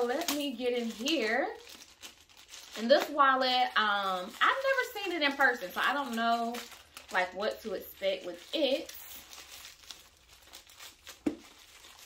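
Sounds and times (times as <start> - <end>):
wrapping crinkling and rustling: 0.0 - 12.0.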